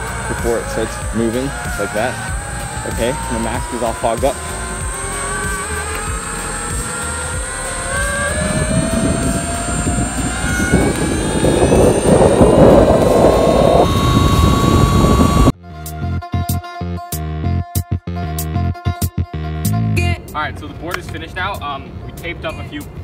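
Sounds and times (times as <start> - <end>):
background music: 0.0 - 13.8
electric motor and belt whining: 0.0 - 15.6
wind: 0.0 - 15.6, 20.0 - 23.0.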